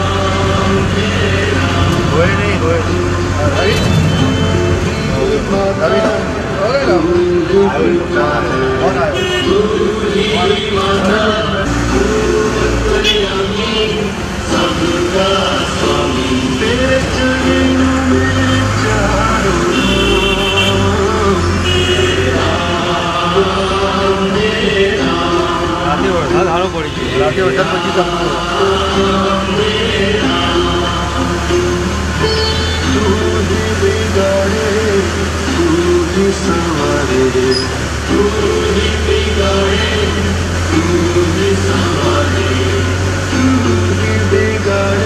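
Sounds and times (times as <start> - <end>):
men singing a devotional chant: 0.0 - 45.0
vehicle engine humming: 0.0 - 45.0.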